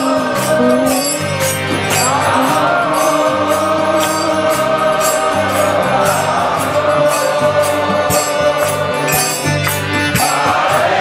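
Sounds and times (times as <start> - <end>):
crowd singing in unison: 0.0 - 11.0
sustained held accompaniment: 0.0 - 11.0.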